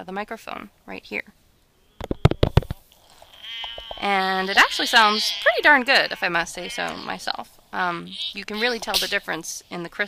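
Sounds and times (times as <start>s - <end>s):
sharp clicks and pops: 2.0s - 4.1s.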